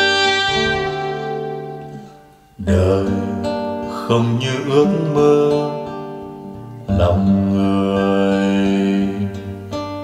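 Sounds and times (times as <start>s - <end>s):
long held low note: 0.0s - 2.2s
acoustic guitar: 0.0s - 10.0s
ballad over loudspeakers: 2.6s - 9.8s.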